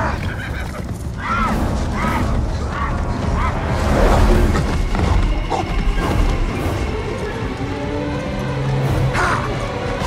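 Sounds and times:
horses galloping: 0.0 - 10.0.

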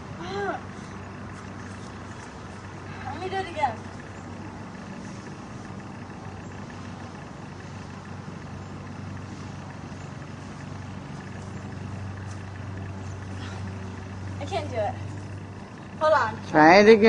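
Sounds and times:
road traffic hum: 0.0 - 17.0.

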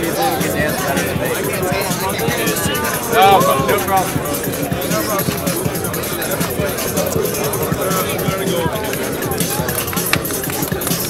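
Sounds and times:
crowd voices: 0.0 - 11.0
dance music with fast beat: 0.0 - 11.0.

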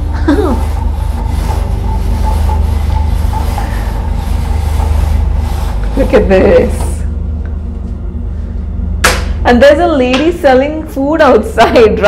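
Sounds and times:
roller blind being pulled up: 0.0 - 7.0
boat engine hum: 0.0 - 10.1.

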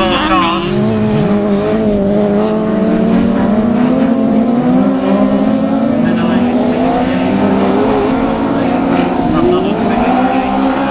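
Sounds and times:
racing car engines running hard: 0.0 - 10.9.

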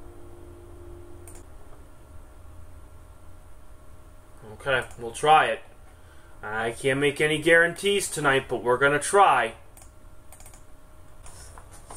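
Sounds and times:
faint steady tone: 0.0 - 4.6
low steady hum: 0.0 - 11.9
computer mouse click: 1.2 - 1.4, 9.8 - 10.6.

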